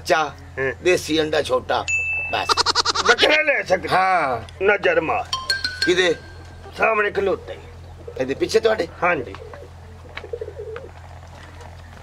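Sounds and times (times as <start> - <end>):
steady low hum: 1.5 - 12.0
dove cooing: 6.2 - 12.0.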